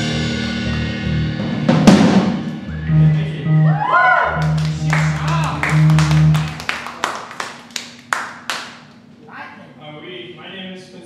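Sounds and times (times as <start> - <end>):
electric bass low notes: 0.0 - 6.7
bending electric guitar lines: 2.5 - 6.8
sparse audience clapping: 4.4 - 9.0.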